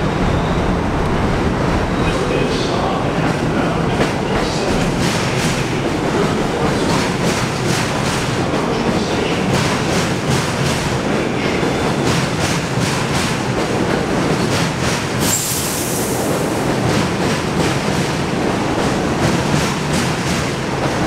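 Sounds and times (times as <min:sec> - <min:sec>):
subway cars rolling past: 0:00.0 - 0:21.0.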